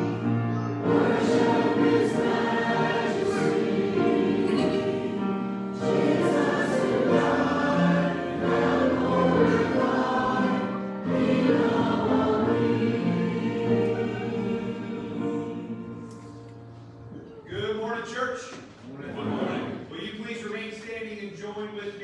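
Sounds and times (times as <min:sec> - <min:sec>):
church choir singing in parts: 0:00.8 - 0:17.1, 0:19.1 - 0:20.0.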